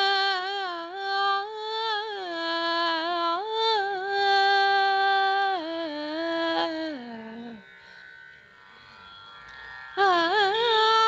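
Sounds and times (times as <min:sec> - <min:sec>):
veena string note ringing: 0:00.0 - 0:11.0.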